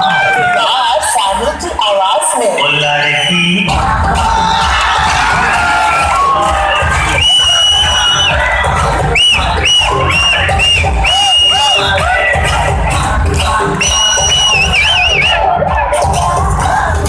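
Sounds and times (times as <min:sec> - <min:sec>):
crowd cheering: 0:00.0 - 0:01.2, 0:02.6 - 0:17.0
loud dance music with heavy beat: 0:00.0 - 0:17.0.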